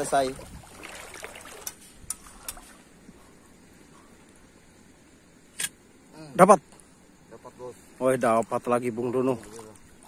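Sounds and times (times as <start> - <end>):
water trickling: 0.0 - 3.1, 8.0 - 10.0.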